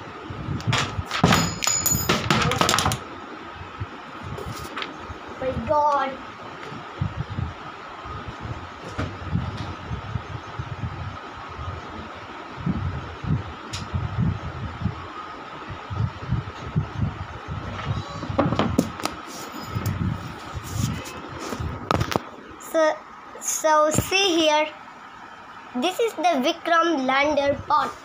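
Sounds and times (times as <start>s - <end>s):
faint steady whine: 0.0s - 28.0s
phone handling rumbles and knocks: 0.7s - 3.0s.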